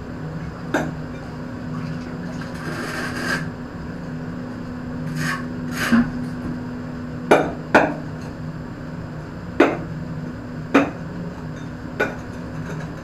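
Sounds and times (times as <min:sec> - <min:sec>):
steady low hum: 0:00.0 - 0:13.0
trowel scraping wet mortar: 0:02.6 - 0:03.5, 0:05.1 - 0:06.1.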